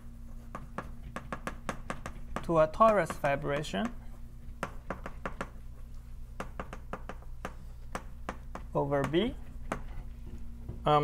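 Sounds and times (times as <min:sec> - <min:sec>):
chalk tapping on blackboard: 0:00.3 - 0:10.0.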